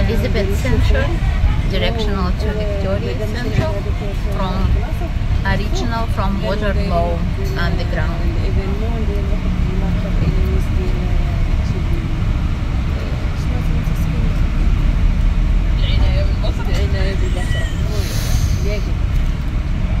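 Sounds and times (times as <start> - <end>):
bus engine rumble: 0.0 - 20.0
passengers talking: 0.0 - 20.0
road noise: 0.0 - 20.0.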